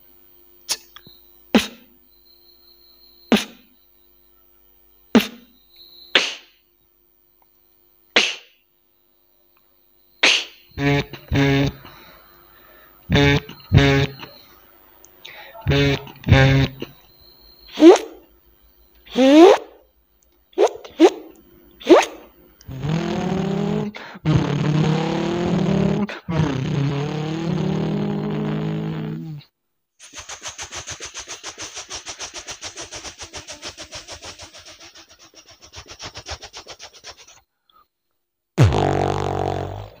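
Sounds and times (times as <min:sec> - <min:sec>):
beatboxer zipper sounds: 0:01.6 - 0:01.8, 0:03.3 - 0:03.6, 0:05.2 - 0:05.4, 0:06.2 - 0:06.5, 0:08.2 - 0:08.5, 0:10.2 - 0:12.0, 0:13.1 - 0:14.4, 0:15.6 - 0:17.0, 0:17.8 - 0:18.2, 0:19.1 - 0:19.8, 0:20.6 - 0:37.4, 0:38.6 - 0:40.0
beatboxed helicopter pulses: 0:06.2 - 0:06.4, 0:10.2 - 0:11.9, 0:13.1 - 0:14.4, 0:15.6 - 0:16.9, 0:22.7 - 0:29.4, 0:30.0 - 0:37.4
beatboxed sustained noisy sound: 0:06.2 - 0:06.4, 0:10.2 - 0:11.9, 0:13.1 - 0:14.4, 0:15.6 - 0:16.9, 0:22.7 - 0:29.4, 0:30.0 - 0:37.4
beatboxed deep bass burst: 0:10.8 - 0:11.9, 0:13.1 - 0:14.3, 0:15.7 - 0:16.9, 0:22.7 - 0:29.4, 0:38.6 - 0:40.0.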